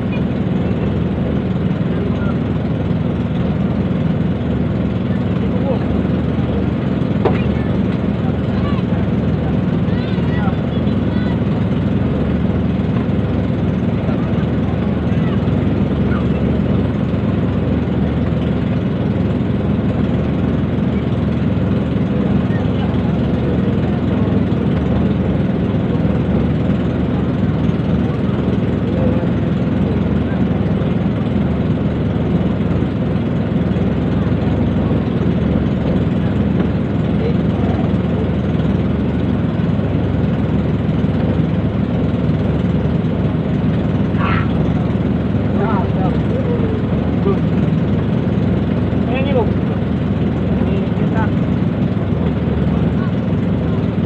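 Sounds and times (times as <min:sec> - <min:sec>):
engine idling: 0:00.0 - 0:54.0
people's voices: 0:04.8 - 0:12.2, 0:12.9 - 0:18.5, 0:22.0 - 0:32.8, 0:33.6 - 0:39.3, 0:44.0 - 0:53.6.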